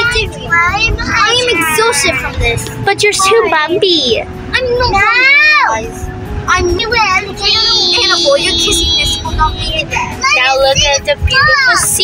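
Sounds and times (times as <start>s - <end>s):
car road rumble: 0.0s - 12.0s.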